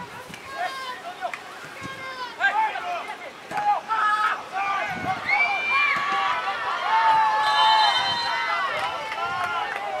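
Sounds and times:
people shouting and cheering: 0:00.0 - 0:10.0.

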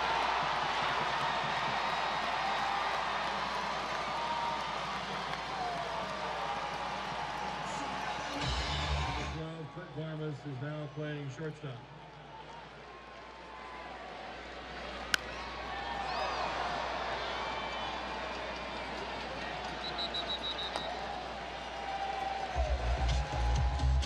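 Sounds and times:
crowd noise: 0:00.0 - 0:24.0.

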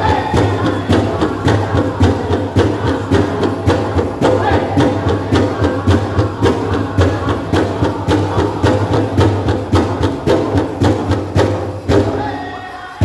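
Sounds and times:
big drum steady beat: 0:00.0 - 0:13.0
drum group singing: 0:00.0 - 0:13.0.

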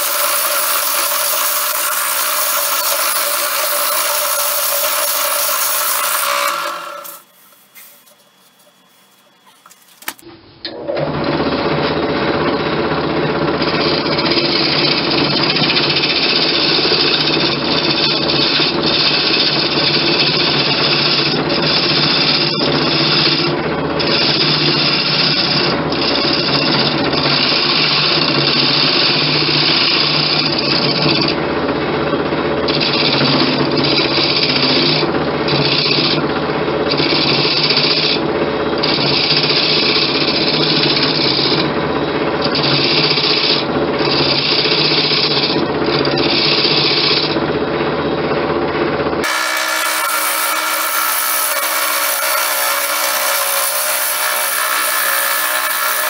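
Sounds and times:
turning tool scraping wood: 0:00.0 - 0:10.2, 0:13.6 - 0:31.4, 0:32.7 - 0:36.2, 0:36.9 - 0:38.2, 0:38.8 - 0:41.6, 0:42.4 - 0:47.4, 0:49.2 - 0:56.0
wood lathe humming: 0:00.0 - 0:10.2, 0:10.9 - 0:31.5, 0:32.6 - 0:48.4, 0:49.2 - 0:56.0.

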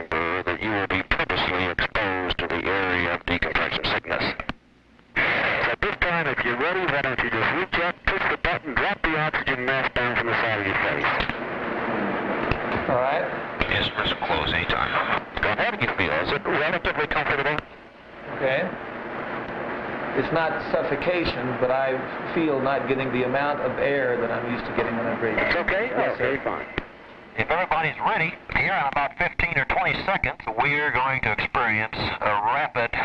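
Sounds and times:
person talking over intercom: 0:22.7 - 0:26.7.

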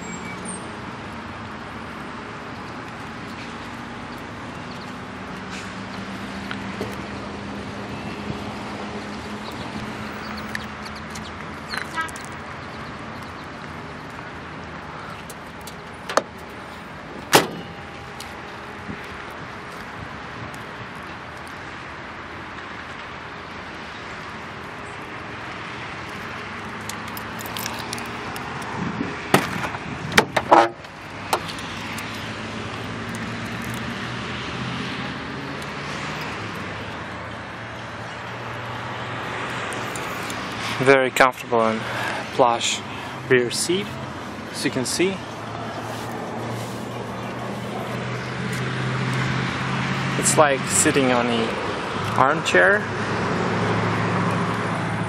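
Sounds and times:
car door latch clicking: 0:17.2 - 0:17.7
car trunk lid banging shut: 0:17.3 - 0:17.8, 0:29.3 - 0:30.8.

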